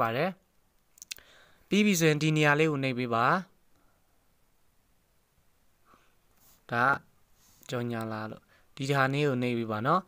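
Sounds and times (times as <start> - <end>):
man talking: 0.0 - 0.4, 1.7 - 3.6, 6.7 - 10.0.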